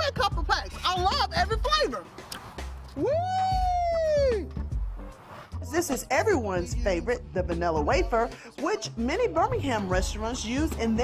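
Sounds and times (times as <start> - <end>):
woman whooping: 3.0 - 4.6.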